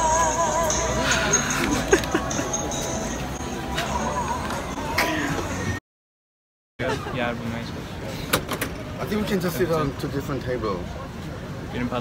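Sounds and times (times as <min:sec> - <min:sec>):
street voices: 0:00.0 - 0:05.8, 0:06.8 - 0:12.0.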